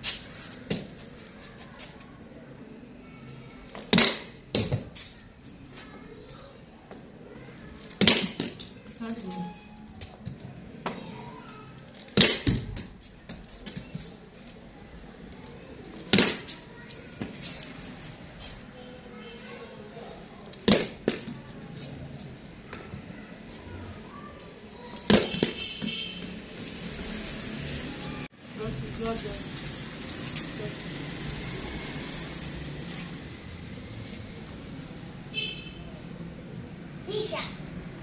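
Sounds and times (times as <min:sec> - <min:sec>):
ball bouncing: 0:00.0 - 0:01.1, 0:03.7 - 0:05.0, 0:07.9 - 0:11.0, 0:12.0 - 0:14.2, 0:20.5 - 0:21.6, 0:24.9 - 0:26.7
cricket bat striking ball: 0:25.0 - 0:26.2.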